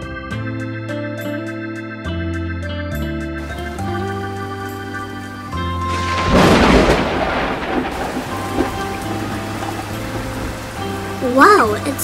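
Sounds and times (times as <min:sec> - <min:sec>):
light background music: 0:00.0 - 0:12.0
thunderclap: 0:03.4 - 0:11.4
steady rain: 0:03.4 - 0:12.0.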